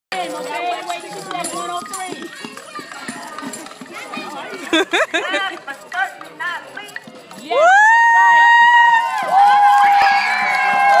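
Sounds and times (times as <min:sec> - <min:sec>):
children chattering: 0:00.1 - 0:07.6
tambourine taps and jingles: 0:00.7 - 0:07.5.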